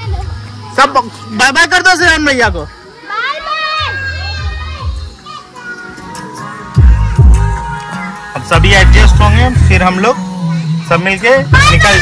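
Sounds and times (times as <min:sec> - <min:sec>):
children calling out: 0:00.0 - 0:08.4, 0:10.0 - 0:12.0
background music: 0:03.8 - 0:12.0.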